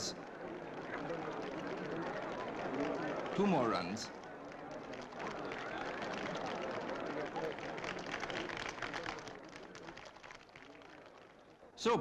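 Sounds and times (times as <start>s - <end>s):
faint clapping: 0.0s - 11.8s
crowd voices: 0.0s - 12.0s.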